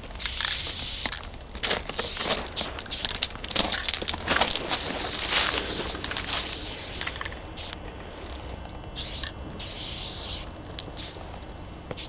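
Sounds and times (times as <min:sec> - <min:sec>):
spray paint can hissing: 0:00.2 - 0:01.2, 0:01.9 - 0:03.4, 0:04.6 - 0:07.8, 0:09.0 - 0:11.2.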